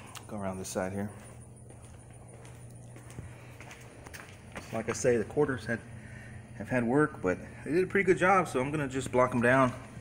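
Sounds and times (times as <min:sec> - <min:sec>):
footsteps on concrete floor: 0:00.0 - 0:05.6, 0:09.3 - 0:10.0
steady low hum: 0:00.0 - 0:10.0.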